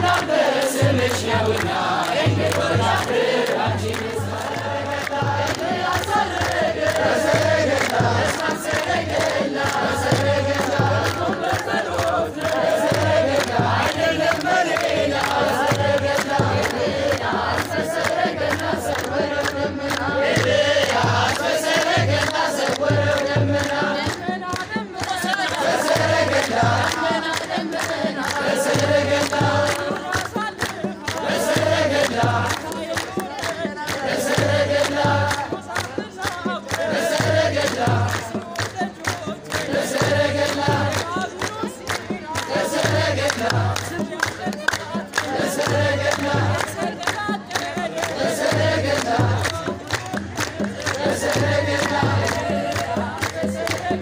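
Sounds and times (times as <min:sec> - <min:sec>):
crowd singing together: 0:00.0 - 0:54.0
hands clapping in time: 0:00.0 - 0:54.0.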